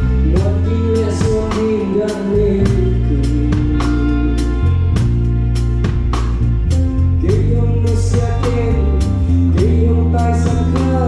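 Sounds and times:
drum kit beat: 0.0s - 11.0s
electric bass notes: 0.0s - 11.0s.

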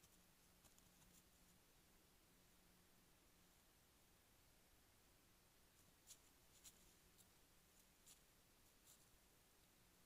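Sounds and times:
faint steady hiss: 0.0s - 10.0s
faint crisp ticks in dry grass: 5.8s - 9.8s.

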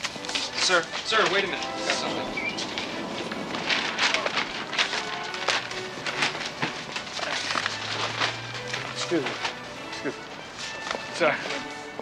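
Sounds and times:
shopping bags rustling: 0.0s - 11.6s
footsteps: 0.0s - 12.0s
soft background music: 0.0s - 12.0s.

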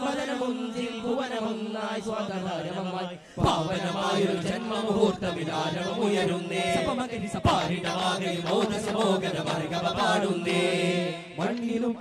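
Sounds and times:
voices singing a chant: 0.0s - 12.0s.

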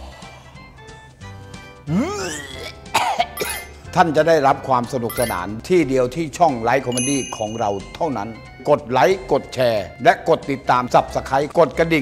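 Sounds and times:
background music: 0.0s - 12.0s
man clearing his throat: 1.9s - 3.7s
man coughing: 2.0s - 3.7s.

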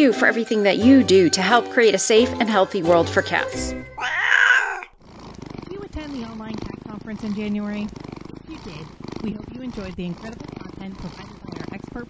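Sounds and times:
cat purring: 3.2s - 12.0s
cat crying: 3.9s - 5.0s.

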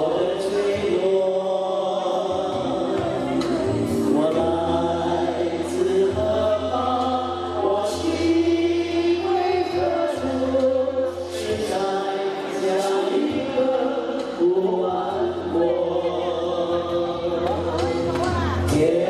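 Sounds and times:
amplified backing music: 0.0s - 19.0s
group singing into microphones: 0.0s - 19.0s
sustained bass line: 0.0s - 19.0s.

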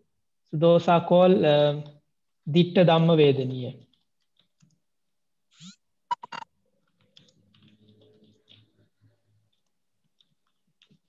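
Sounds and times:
computer keyboard clicks: 3.8s - 4.8s, 6.3s - 8.9s, 9.5s - 11.0s.

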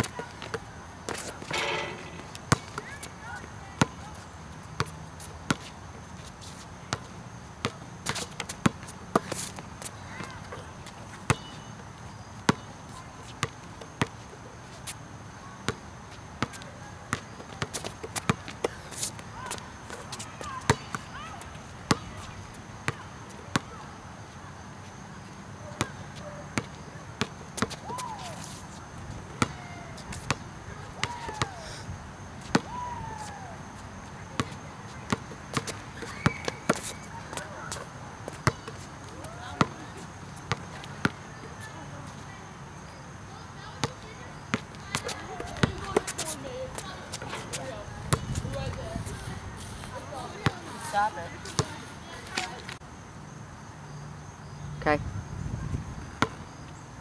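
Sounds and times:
basketball bouncing on asphalt: 0.0s - 4.9s, 11.3s - 11.7s, 12.5s - 12.7s, 16.4s - 23.8s, 25.8s - 26.0s, 26.6s - 28.2s, 29.3s - 30.4s, 31.0s - 31.6s, 32.4s - 33.2s, 34.3s - 41.2s, 43.6s - 48.8s, 50.3s - 51.8s, 56.2s - 56.4s
shoe chirps: 1.2s - 3.1s.

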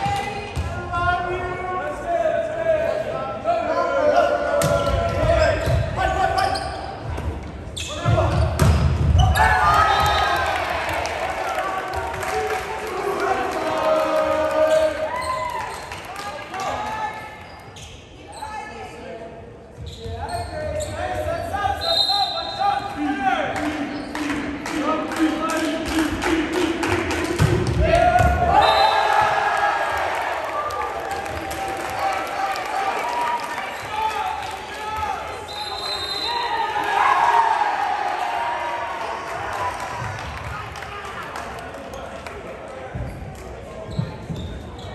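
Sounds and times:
high whistle: 21.8s - 22.7s, 28.5s - 29.1s, 35.4s - 36.6s.

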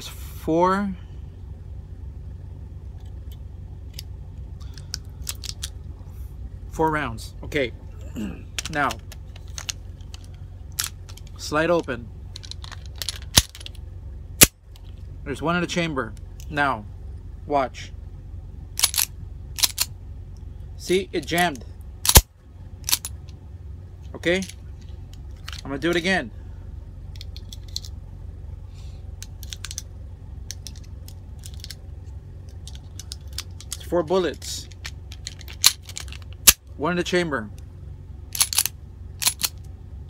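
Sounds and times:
low hum: 0.0s - 40.0s
pistol metallic clicks and rattles: 3.0s - 5.8s, 8.6s - 11.4s, 12.3s - 13.8s, 18.8s - 19.9s, 22.0s - 23.4s, 24.4s - 26.0s, 27.1s - 28.0s, 29.2s - 31.8s, 32.4s - 33.9s, 34.6s - 36.6s, 38.3s - 39.7s
sharp metal click: 18.8s - 19.9s, 22.0s - 22.3s, 38.3s - 39.7s.

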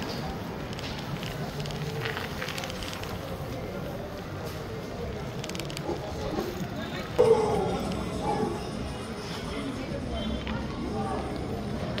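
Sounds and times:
faint voices: 0.0s - 12.0s
street noise: 0.0s - 12.0s
crackling clicks: 5.3s - 6.0s.

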